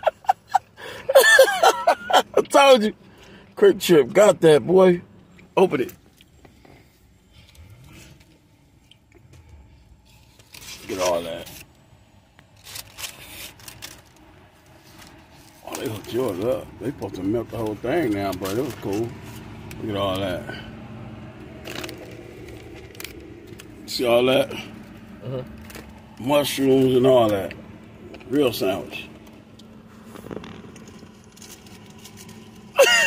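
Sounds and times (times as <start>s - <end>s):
car cabin hum: 0.0s - 7.6s, 13.8s - 33.0s
paper wrapper rustling: 12.5s - 16.4s.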